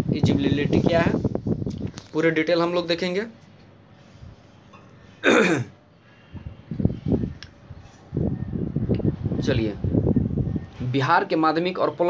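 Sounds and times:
man clearing his throat: 5.2s - 5.7s.

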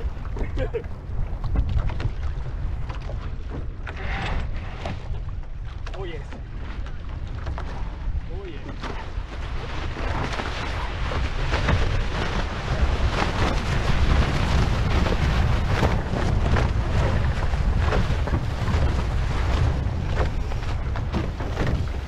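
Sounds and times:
water rushing past hulls: 0.0s - 22.0s
wind buffeting microphone: 0.0s - 22.0s.

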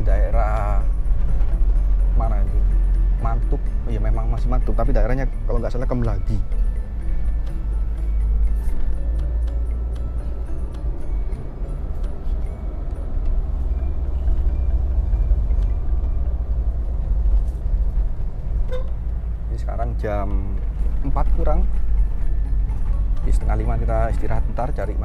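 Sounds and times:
car engine and tyre rumble: 0.0s - 25.0s.

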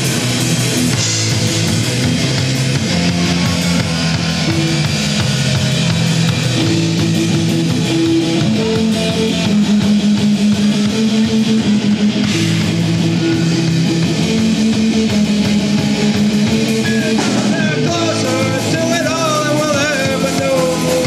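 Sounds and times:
bass guitar: 0.0s - 21.0s
drum kit: 0.0s - 21.0s
electric guitars strumming chords: 0.0s - 21.0s.

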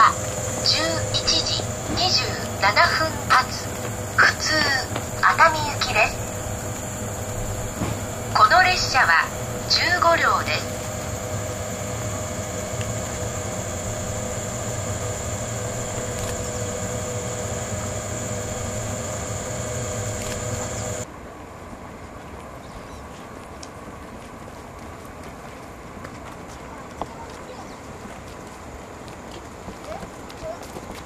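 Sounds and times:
electric train hum with whine: 0.0s - 31.0s.

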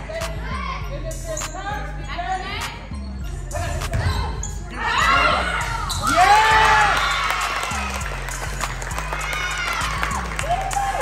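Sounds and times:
background music beat: 0.0s - 11.0s
people shouting and cheering: 3.5s - 11.0s.

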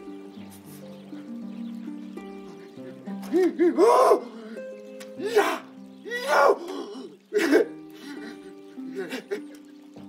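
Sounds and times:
background music score: 0.0s - 10.0s
man grunting and shouting: 5.2s - 7.2s.

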